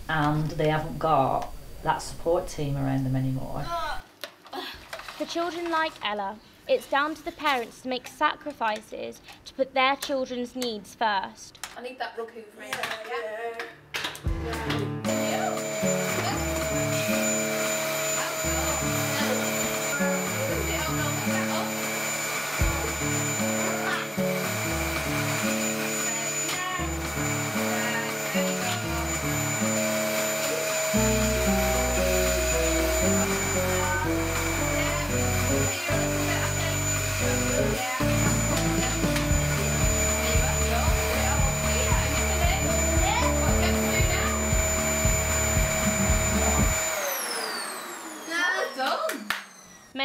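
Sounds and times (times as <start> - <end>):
background music: 13.7 - 46.9
vacuum cleaner whining: 14.7 - 50.0.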